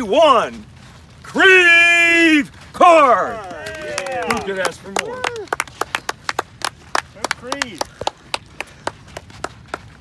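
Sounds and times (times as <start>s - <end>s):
hands clapping: 3.3s - 10.0s.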